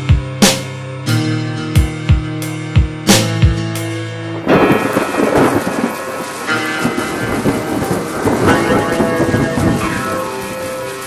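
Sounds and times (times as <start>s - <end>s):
rumbling crackling electronic track: 1.2s - 11.0s.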